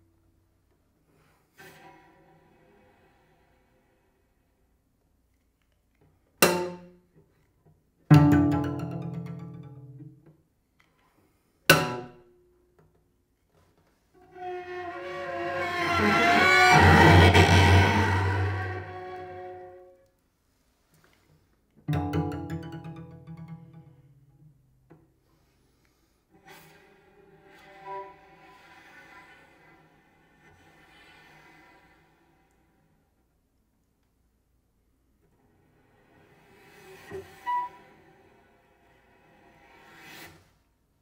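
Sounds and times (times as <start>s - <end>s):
bowed cello notes: 8.1s - 10.2s, 14.3s - 19.9s, 21.9s - 24.4s
solo cello: 8.1s - 10.2s, 14.2s - 20.1s, 26.3s - 33.1s, 35.3s - 40.5s.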